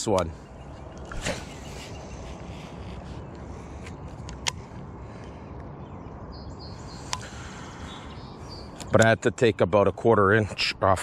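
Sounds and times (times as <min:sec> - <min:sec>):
low outdoor rush: 0:00.0 - 0:11.0
sharp clicks: 0:08.8 - 0:09.2.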